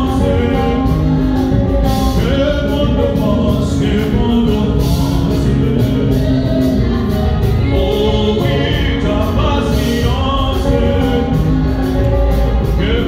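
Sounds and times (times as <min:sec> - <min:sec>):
gospel singing with accompaniment: 0:00.0 - 0:13.0.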